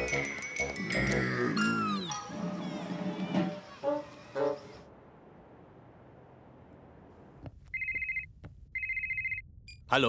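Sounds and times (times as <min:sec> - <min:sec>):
mobile phone ringing: 0:07.7 - 0:09.4.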